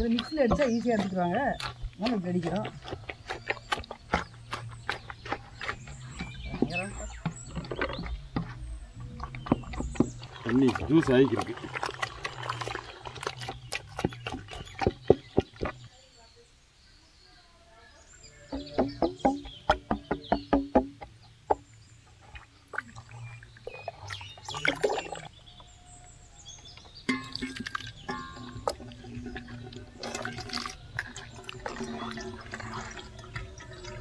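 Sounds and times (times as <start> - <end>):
wet squelching and splashing: 9.1 - 15.8, 22.2 - 25.4, 27.1 - 34.0.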